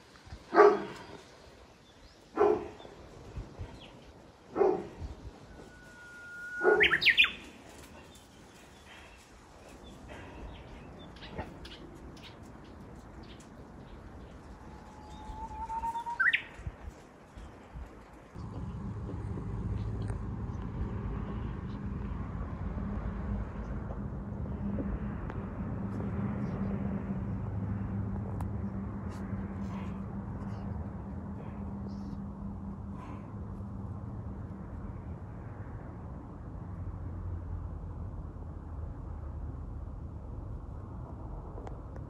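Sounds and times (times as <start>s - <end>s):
dog barking: 0.5s - 1.2s, 2.4s - 2.8s, 4.5s - 5.0s, 6.6s - 7.2s
bird singing whistled notes: 5.5s - 7.6s, 15.0s - 16.5s
low steady rumble: 16.6s - 42.0s.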